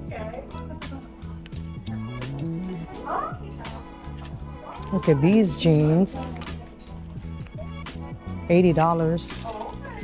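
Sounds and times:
music with repeating bass line: 0:01.7 - 0:03.0
gliding vocal-like sound: 0:01.9 - 0:03.2.

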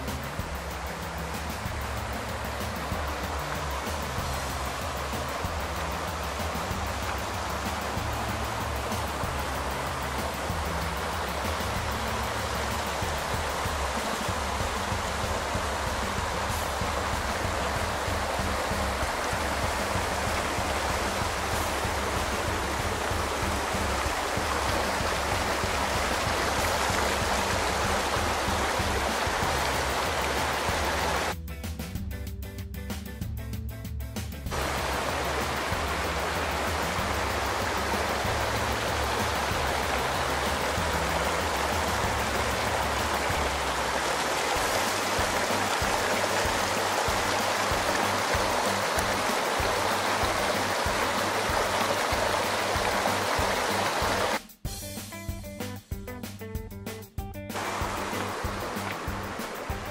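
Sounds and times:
creek rushing over rocks: 0:00.0 - 0:31.4, 0:34.5 - 0:54.4, 0:57.6 - 0:59.9.

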